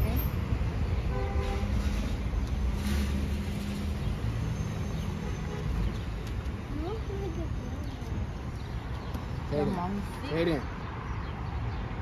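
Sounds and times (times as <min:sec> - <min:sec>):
car and traffic rumble: 0:00.0 - 0:12.0.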